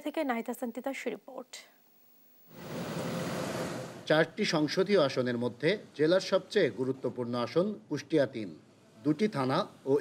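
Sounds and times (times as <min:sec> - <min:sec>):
outdoor ambience rushing noise: 0:02.5 - 0:10.0.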